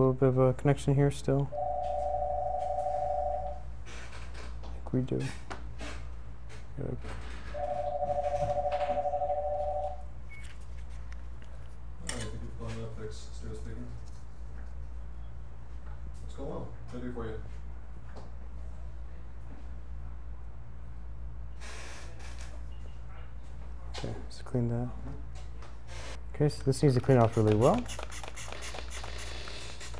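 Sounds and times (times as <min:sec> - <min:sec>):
low electrical hum: 0:00.0 - 0:29.9
electronic telephone ringer warbling: 0:07.6 - 0:10.0.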